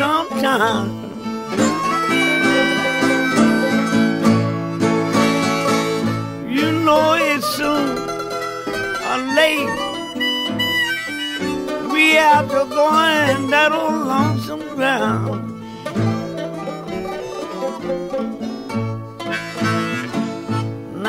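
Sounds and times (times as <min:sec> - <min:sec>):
guitars picking and strumming: 0:00.0 - 0:21.0
harmonica bending notes: 0:00.0 - 0:21.0.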